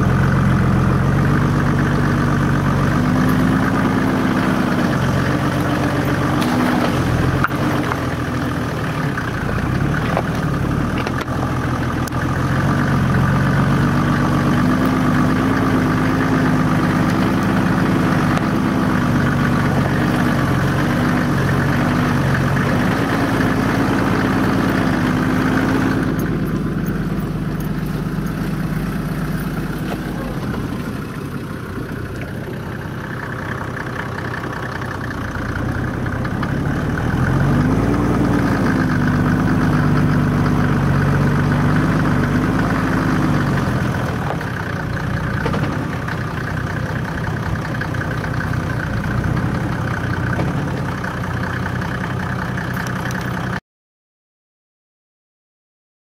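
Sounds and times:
car engine from inside cabin: 0.0 - 53.6.

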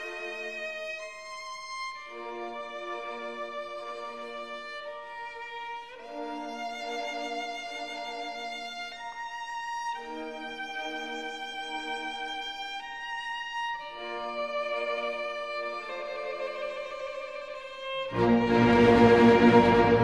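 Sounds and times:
slow violin melody: 0.0 - 20.0.

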